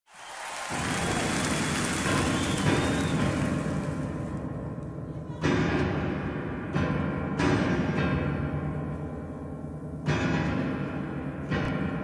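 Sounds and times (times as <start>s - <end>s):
audience applauding: 0.1s - 4.4s.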